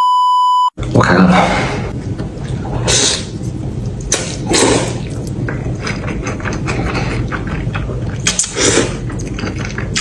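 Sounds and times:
wet chewing sounds: 0:02.4 - 0:10.0
person slurping noodles: 0:02.6 - 0:03.4, 0:04.3 - 0:05.2, 0:06.2 - 0:10.0.

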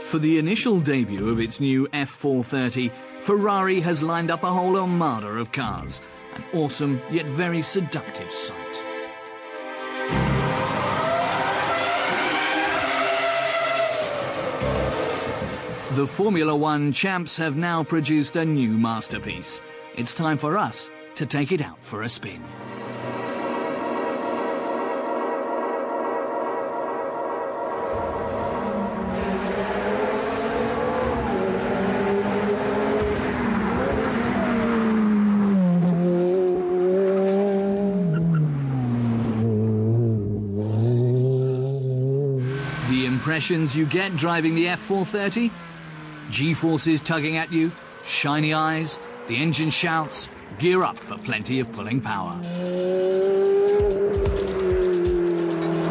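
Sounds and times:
sports car engine revving: 0:27.9 - 0:55.9.

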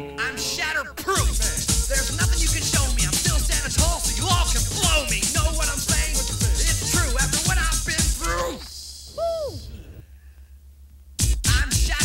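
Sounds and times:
man's falsetto hoot: 0:09.1 - 0:10.0.

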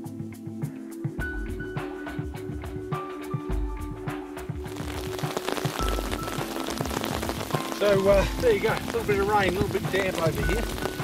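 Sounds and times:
music with mallet tones: 0:00.0 - 0:04.8, 0:05.8 - 0:11.0
rain hissing on a river: 0:04.6 - 0:11.0.

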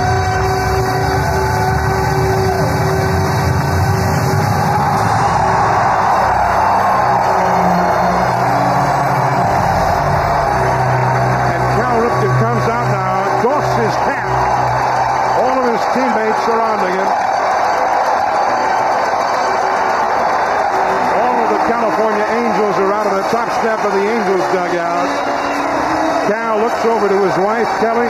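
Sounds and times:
crowd cheering: 0:00.0 - 0:28.0
music over stadium loudspeakers: 0:00.0 - 0:28.0.

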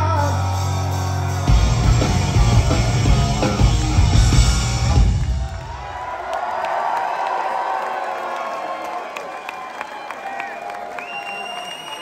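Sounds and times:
rock band playing: 0:00.0 - 0:06.0
crowd cheering and whooping: 0:01.5 - 0:12.0.

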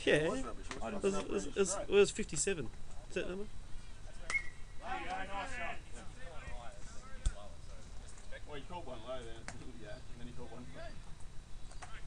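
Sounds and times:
voices calling out: 0:03.8 - 0:11.2.

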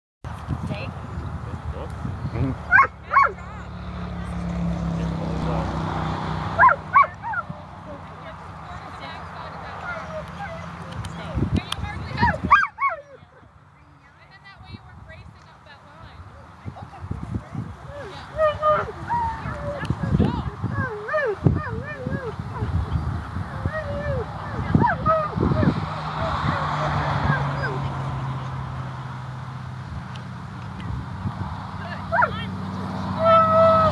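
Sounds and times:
dog yelping and whining: 0:02.7 - 0:03.4, 0:06.6 - 0:07.4, 0:17.9 - 0:27.8
dog barking: 0:02.7 - 0:03.5, 0:06.6 - 0:07.5.

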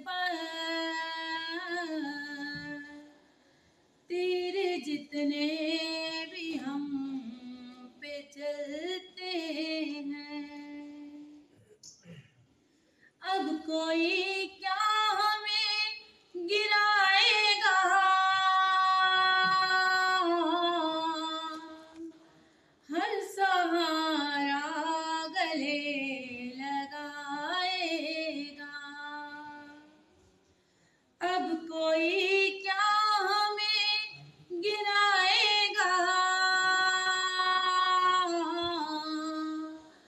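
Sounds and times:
woman singing unaccompanied: 0:00.0 - 0:03.2, 0:04.1 - 0:11.4, 0:13.2 - 0:22.1, 0:22.9 - 0:30.0, 0:31.2 - 0:39.9.

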